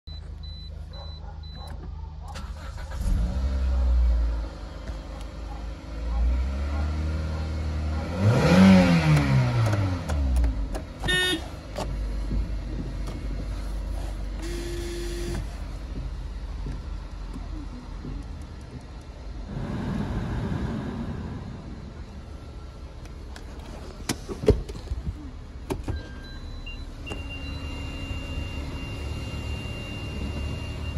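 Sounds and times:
dashboard beeps: 0.1s - 1.8s, 25.8s - 30.9s
car engine starting and idling: 0.1s - 30.9s
engine revving: 2.4s - 4.7s, 5.3s - 11.6s, 19.4s - 22.1s
rush of noise: 19.4s - 22.8s.

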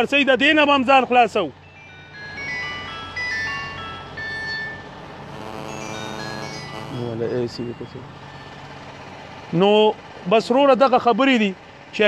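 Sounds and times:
outdoor gathering background noise: 0.0s - 12.0s.

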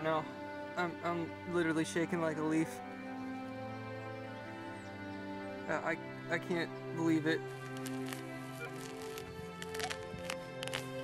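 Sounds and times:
background music with held notes: 0.0s - 11.0s
sharp clicks: 7.5s - 11.0s.

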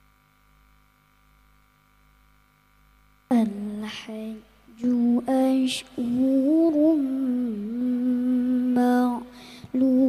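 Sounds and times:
child reciting melodically: 3.3s - 10.0s.

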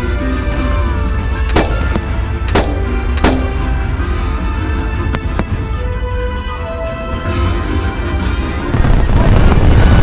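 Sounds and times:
firework cracks: 1.5s - 4.5s
heavy low rumble: 1.5s - 5.7s
music playing: 1.5s - 8.8s.

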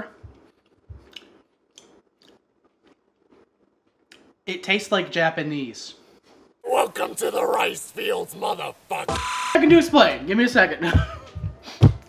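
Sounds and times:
person chewing crunchy food: 0.3s - 4.3s.

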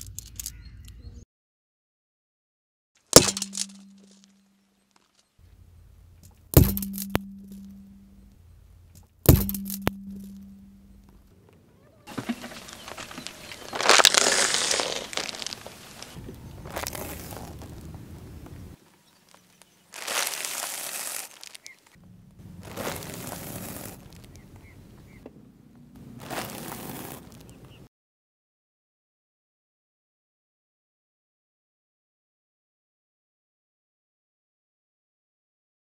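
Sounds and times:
tyre crushing objects sharp cracks: 3.2s - 4.3s, 6.3s - 8.1s, 9.3s - 11.2s, 12.1s - 17.8s, 19.3s - 24.7s
low ring: 5.4s - 11.2s
foil packet crunching under tyre: 12.1s - 18.4s, 19.1s - 24.9s, 26.0s - 27.8s.

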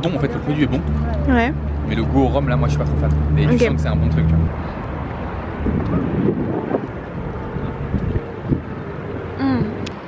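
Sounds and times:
wind buffeting microphone: 4.0s - 9.9s.

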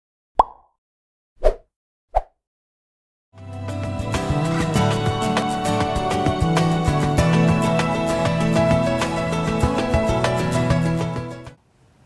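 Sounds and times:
pop sound effects: 0.4s - 0.7s.

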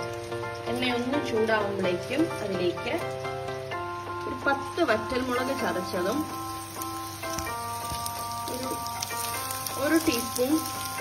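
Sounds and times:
background music with held notes: 0.0s - 11.0s
oil sizzling in a frying pan: 0.0s - 11.0s.

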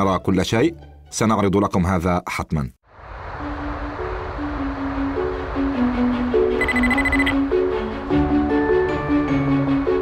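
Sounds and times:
background music: 0.0s - 2.2s, 3.3s - 10.0s
rapid high electronic beeps: 6.6s - 7.4s.

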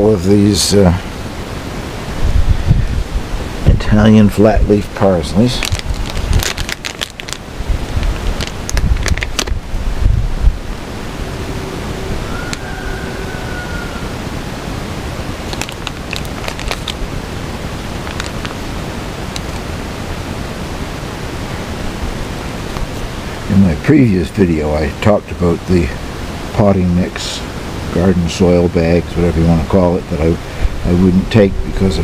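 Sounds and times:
wind noise on microphone: 0.0s - 23.5s, 30.0s - 32.0s
plastic seedling tray rustling: 5.0s - 9.6s, 15.4s - 19.7s.

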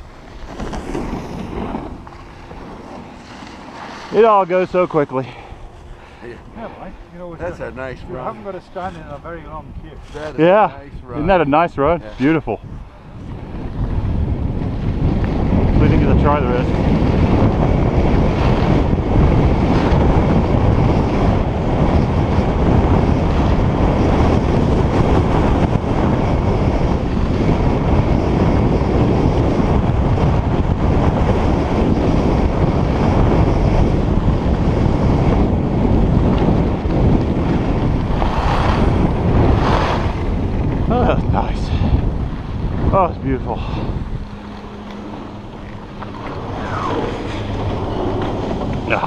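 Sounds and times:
skis running over snow: 0.0s - 5.2s, 32.9s - 40.9s
wind buffeting microphone: 0.0s - 49.0s.

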